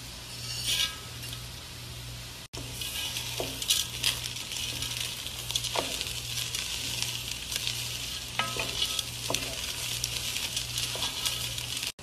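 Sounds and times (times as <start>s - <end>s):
spoon scraping strokes: 0.3s - 1.2s, 2.6s - 12.0s
dry grains stirred in a pot: 0.4s - 1.1s, 2.6s - 12.0s.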